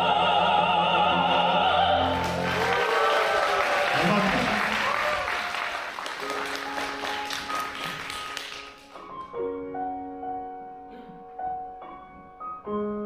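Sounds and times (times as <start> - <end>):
audience applauding: 2.0 - 9.2
soft piano notes: 8.6 - 13.0.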